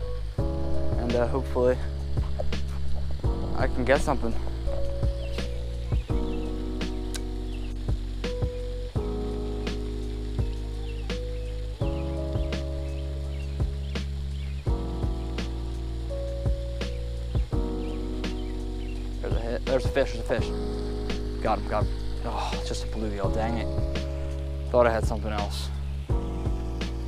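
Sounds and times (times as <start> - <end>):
sharp ticks: 6.8 - 8.7.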